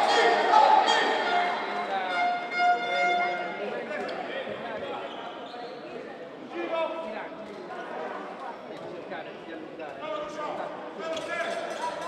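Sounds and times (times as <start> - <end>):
players' voices echoing: 0.0 - 12.0.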